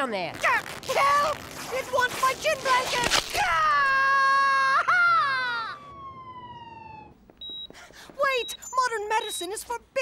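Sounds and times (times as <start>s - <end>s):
woman wailing: 3.4s - 5.9s.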